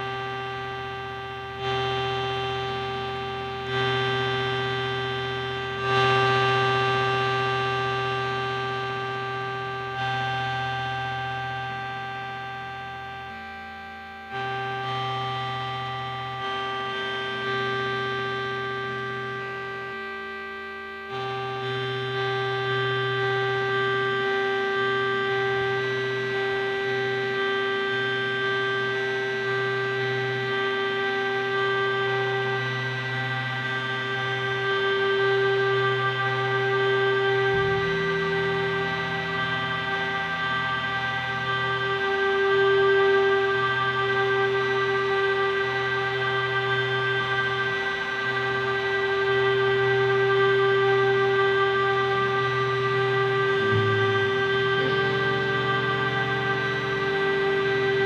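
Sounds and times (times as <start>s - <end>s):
synthesizer drone chord: 0.0s - 58.0s
low bass tone: 35.6s - 58.0s.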